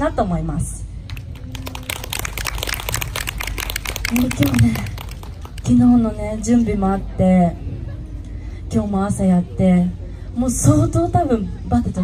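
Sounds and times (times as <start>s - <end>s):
audience applause: 1.1s - 5.7s.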